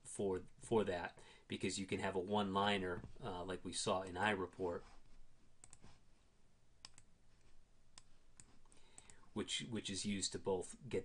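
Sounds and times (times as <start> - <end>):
computer mouse clicks: 5.6 - 5.9, 6.8 - 7.1, 8.0 - 9.2.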